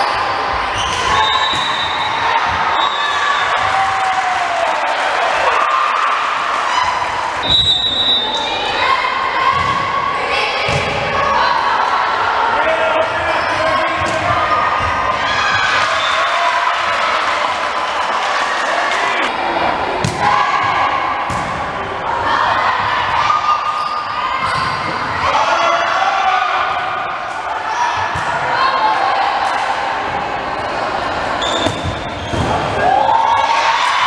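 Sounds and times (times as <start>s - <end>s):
players shouting: 0.0s - 34.0s.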